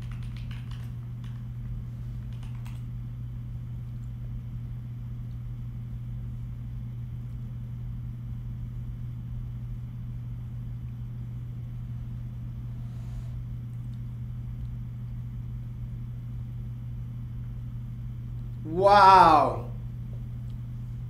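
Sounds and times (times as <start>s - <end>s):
low hum and rumble: 0.0s - 21.0s.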